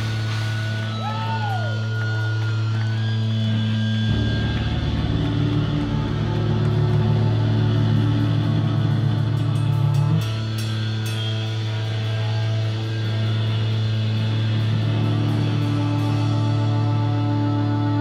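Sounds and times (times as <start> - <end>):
heavy rock band playing: 0.0 - 18.0.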